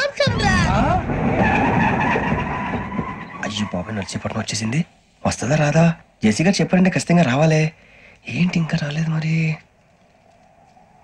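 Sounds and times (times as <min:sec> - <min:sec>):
train rumbling on tracks: 0:00.4 - 0:04.2.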